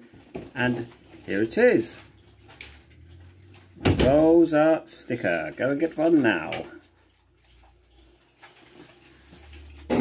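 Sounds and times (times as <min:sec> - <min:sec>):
man speaking: 0:00.5 - 0:02.1, 0:04.0 - 0:06.8.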